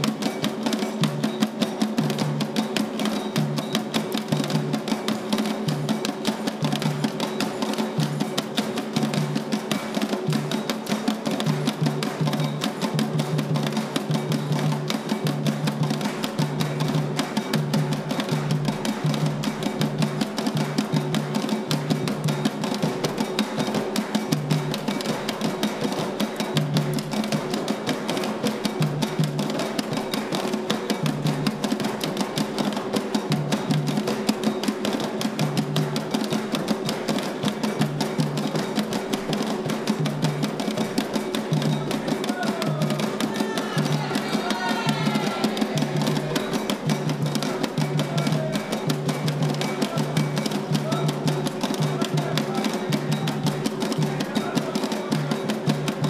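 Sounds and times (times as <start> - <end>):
drums struck with sticks: 0.0 - 56.0.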